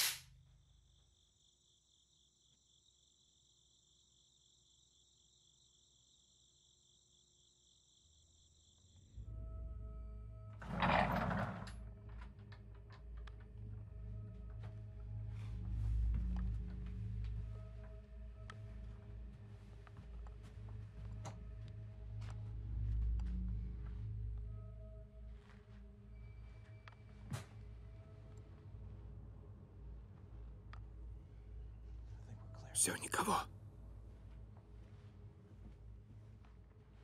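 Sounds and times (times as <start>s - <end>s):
sharp click: 0.0s - 0.3s
droning suspense film score: 0.0s - 37.0s.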